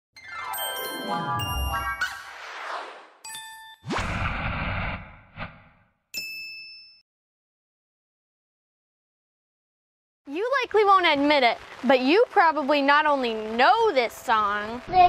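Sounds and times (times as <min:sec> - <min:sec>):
bright chiming dings: 0:00.3 - 0:02.0, 0:06.2 - 0:07.0
rising sweep into low hit: 0:03.9 - 0:05.8.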